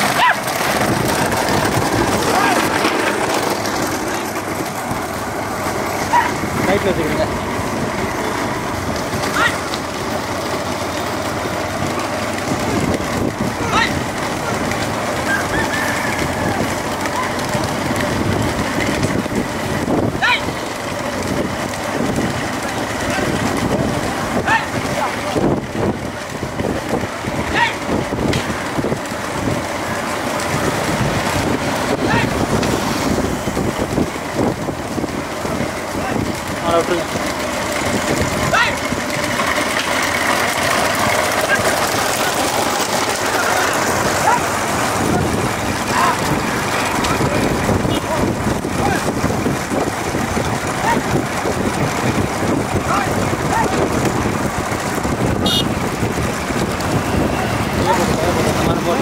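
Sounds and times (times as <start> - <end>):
motorcycle engines running: 0.0 - 59.0
wind buffeting microphone: 0.0 - 59.0
people calling out: 2.2 - 2.9, 6.0 - 6.7, 9.2 - 9.8, 13.5 - 18.0, 20.1 - 20.8, 23.0 - 25.6, 27.3 - 28.1, 31.8 - 32.5, 37.9 - 40.5, 41.1 - 49.4, 50.5 - 51.4, 52.7 - 54.0.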